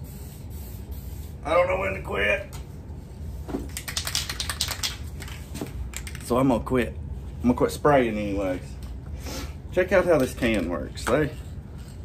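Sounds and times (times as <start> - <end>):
spray can rattling when shaken: 3.6 - 6.5.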